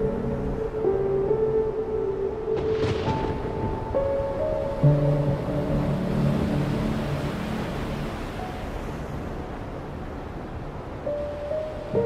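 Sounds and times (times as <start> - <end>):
stormy sea surf rushing: 0.0 - 12.0.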